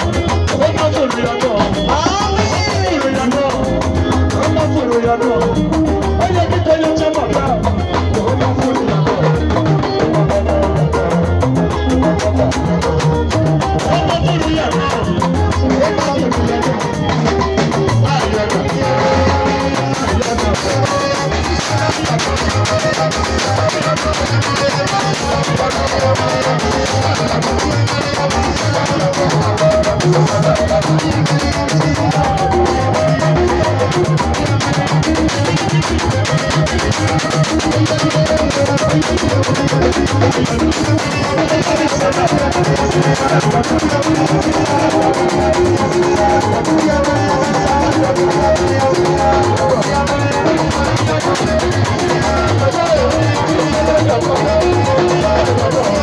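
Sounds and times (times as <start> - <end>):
drum kit: 0.0 - 56.0
guitar playing: 0.0 - 56.0
man singing into a microphone: 0.0 - 56.0.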